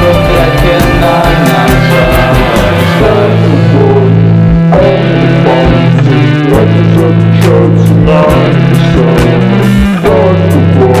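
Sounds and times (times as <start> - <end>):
loud shoegaze guitar music: 0.0 - 11.0.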